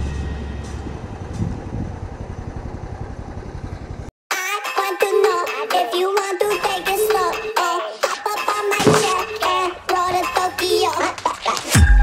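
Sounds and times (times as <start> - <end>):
pulsing engine-like rumble: 0.0 - 4.1.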